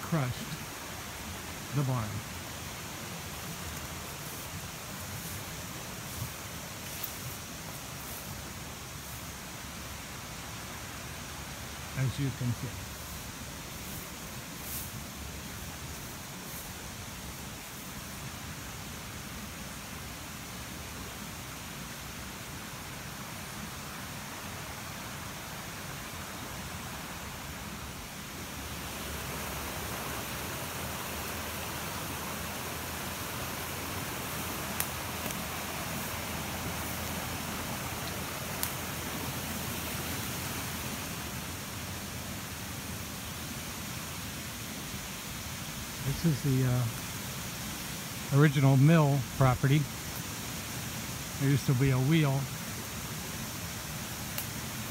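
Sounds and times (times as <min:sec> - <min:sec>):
creek water rushing over rocks: 0:00.0 - 0:54.9.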